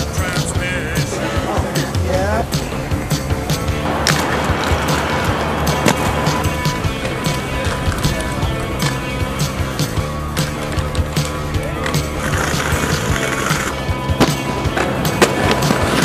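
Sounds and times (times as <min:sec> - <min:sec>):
music with steady bass: 0:00.0 - 0:16.0
skateboard impacts: 0:00.0 - 0:16.0
skateboard wheels rolling: 0:00.0 - 0:16.0.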